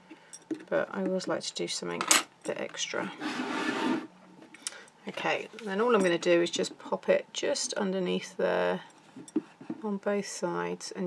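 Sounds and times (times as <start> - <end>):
cardboard box scraping on mat: 3.2 - 4.1.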